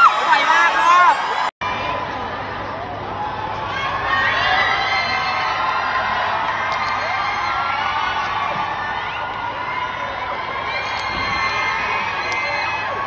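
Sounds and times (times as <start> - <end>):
crowd cheering and screaming: 0.0 - 13.0.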